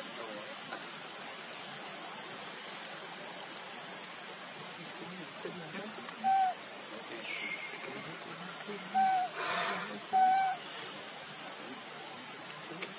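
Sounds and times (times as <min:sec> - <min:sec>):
steady high hiss: 0:00.0 - 0:12.9
baby monkey coo calls: 0:06.1 - 0:06.6, 0:08.8 - 0:10.8.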